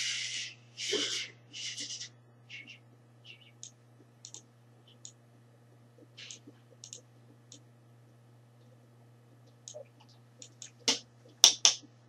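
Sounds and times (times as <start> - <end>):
steady low hum: 0.0 - 12.0
faint irregular clicks: 2.6 - 12.0.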